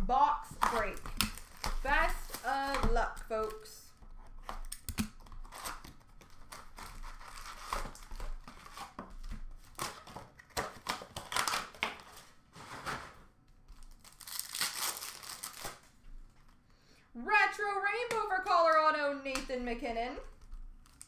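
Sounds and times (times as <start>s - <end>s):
cards rustling and tapping: 0.5s - 12.2s
card wrappers tearing and crinkling: 0.5s - 13.0s, 13.7s - 15.9s, 20.3s - 21.0s.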